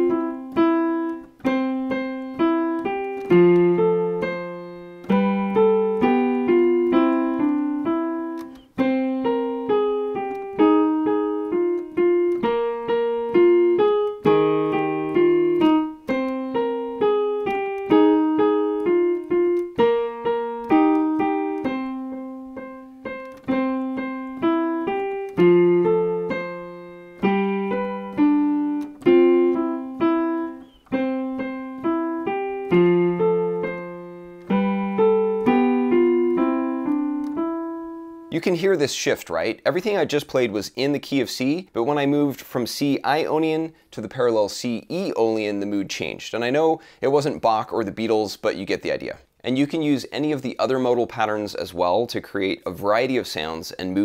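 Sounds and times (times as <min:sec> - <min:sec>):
digital piano melody with chords: 0:00.0 - 0:38.9.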